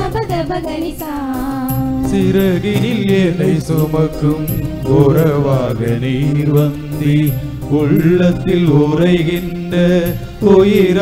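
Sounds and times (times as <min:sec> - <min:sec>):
choir singing a hymn: 0:02.1 - 0:11.0.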